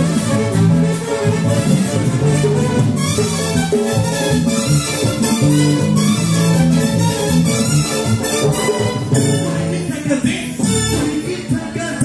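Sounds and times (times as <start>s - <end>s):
loud salsa music: 0.0s - 12.0s.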